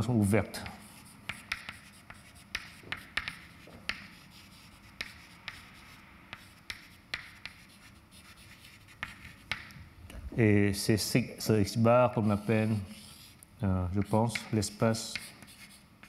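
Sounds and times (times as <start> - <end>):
chalk scratching: 0.6 - 9.8, 12.1 - 16.0
chalk tapping on blackboard: 0.6 - 9.8, 14.0 - 15.8.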